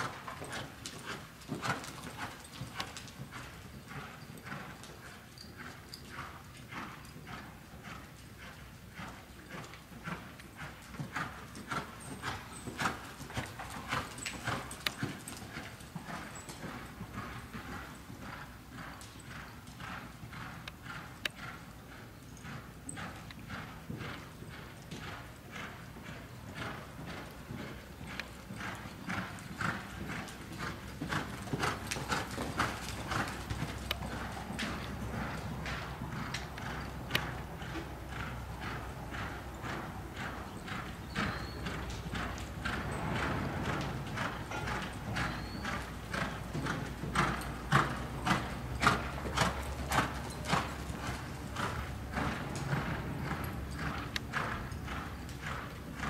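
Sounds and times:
horse hoofbeats on dirt: 0.0 - 56.0.

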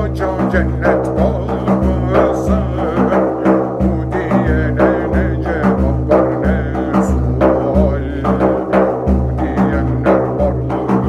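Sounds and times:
deep drum beat: 0.0 - 11.0
man singing in wavering voice: 0.0 - 11.0.

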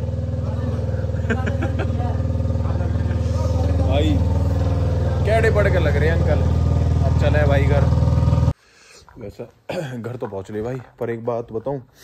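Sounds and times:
voices: 0.0 - 8.1
engine idling: 0.0 - 8.6.

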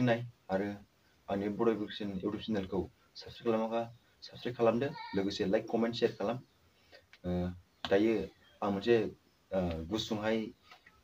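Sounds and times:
man speaking: 0.0 - 6.5, 7.2 - 10.6.

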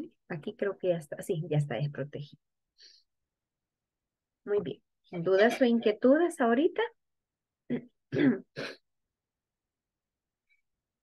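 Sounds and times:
woman clearing throat: 7.7 - 8.8.

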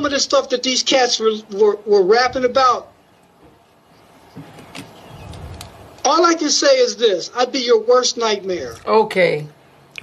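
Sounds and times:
faint low rumble over phone line: 0.0 - 10.0.

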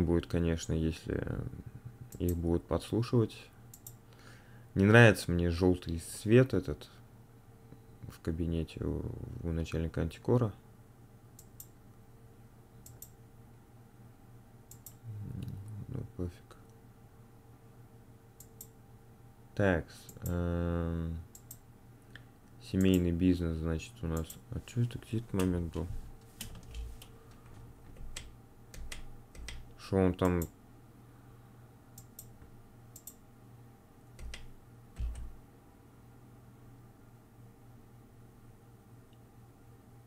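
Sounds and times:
faint low hum: 0.0 - 40.0
sharp little clicks: 3.7 - 4.0, 12.8 - 13.2, 14.7 - 15.6, 20.1 - 20.4, 21.3 - 23.1, 28.0 - 30.5, 34.2 - 35.4.

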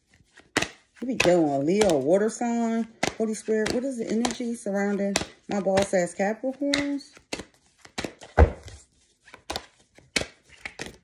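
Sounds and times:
cards knocking on hard surface: 0.4 - 2.2, 2.8 - 6.1, 6.7 - 11.0.

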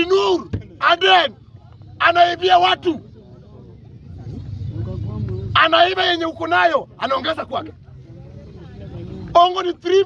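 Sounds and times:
faint crowd voices: 0.0 - 10.0.

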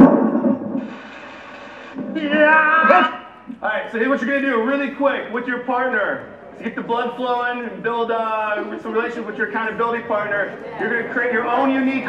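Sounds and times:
steady hiss: 0.7 - 2.5.

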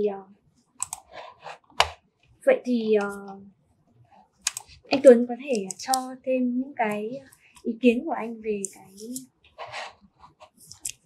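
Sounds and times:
laptop keys and trackpad clicks: 0.8 - 1.1, 4.5 - 4.7.

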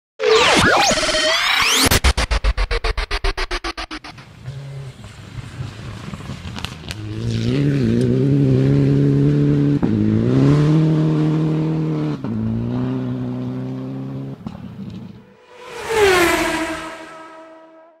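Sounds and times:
rally car engine revving: 1.5 - 17.9
gear changes: 14.4 - 18.0.

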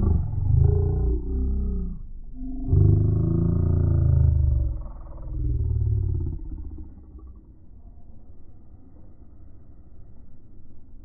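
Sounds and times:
deep drawn-out slowed growl: 0.0 - 10.7.

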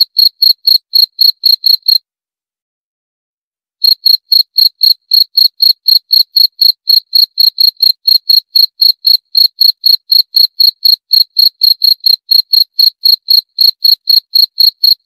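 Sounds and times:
cricket chirping: 0.0 - 2.0, 3.8 - 15.0.

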